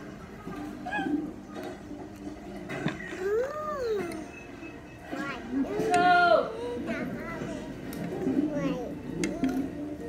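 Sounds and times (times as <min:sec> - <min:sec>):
toddler vocal sounds: 0:03.0 - 0:04.2.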